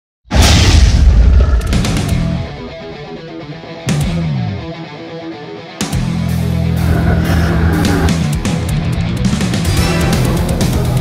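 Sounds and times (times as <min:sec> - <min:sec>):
deep boom hit: 0:00.3 - 0:02.7.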